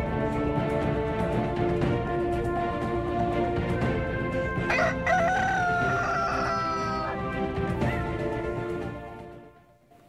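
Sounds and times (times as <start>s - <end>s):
theme music: 0.0s - 9.9s
rooster crowing: 4.7s - 7.3s.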